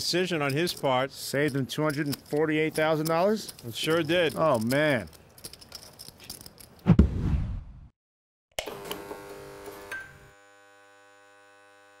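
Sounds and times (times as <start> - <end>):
low thump: 6.9 - 7.9
electronic hum: 8.6 - 12.0.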